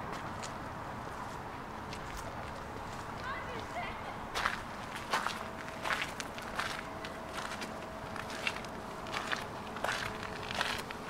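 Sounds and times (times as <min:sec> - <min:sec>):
footsteps crunching on gravel: 0:00.1 - 0:11.0.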